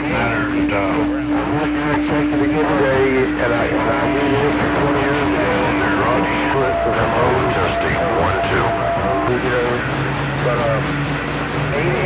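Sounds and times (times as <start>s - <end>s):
garbled radio voices: 0.0s - 12.0s
radio static: 0.0s - 12.0s
steady low tone: 0.0s - 12.0s.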